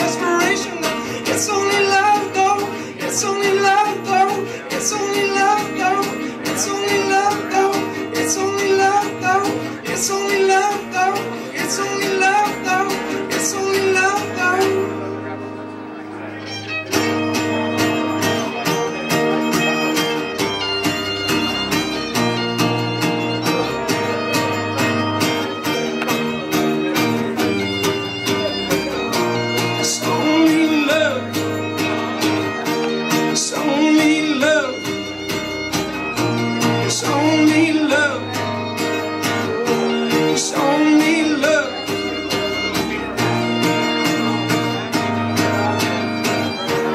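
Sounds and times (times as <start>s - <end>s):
fiddle with sliding notes: 0.0s - 46.9s
strummed acoustic guitar: 0.0s - 46.9s.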